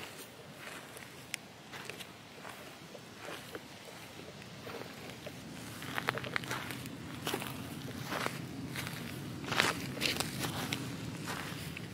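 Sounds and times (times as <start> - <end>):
footsteps on dry leaves: 0.0 - 11.9
low steady rumble: 0.5 - 11.9.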